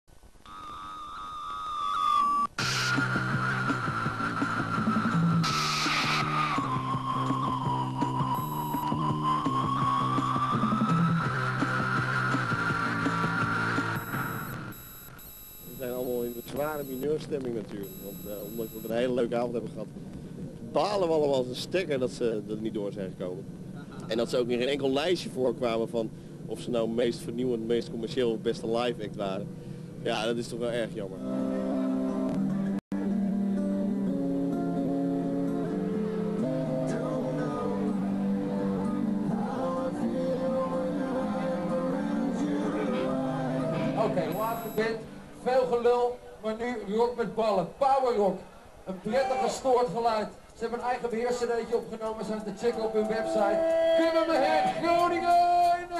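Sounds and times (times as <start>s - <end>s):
electronic jingle music: 8.3s - 9.1s, 14.0s - 17.0s, 44.3s - 44.9s.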